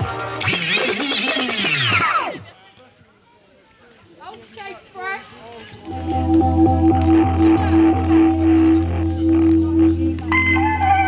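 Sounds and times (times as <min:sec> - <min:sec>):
young voices from crowd: 0:02.0 - 0:11.0
falling pitch sweep: 0:05.9 - 0:11.0
hip-hop beat: 0:05.9 - 0:11.0.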